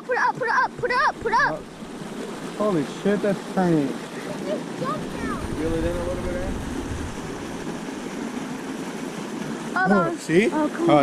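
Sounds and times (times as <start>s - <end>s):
fountain spraying water: 0.0s - 11.0s.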